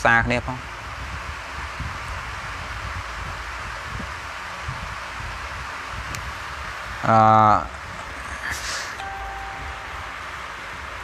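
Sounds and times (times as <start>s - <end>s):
steady background hiss: 1.5s - 11.0s
low rumble: 7.7s - 10.8s.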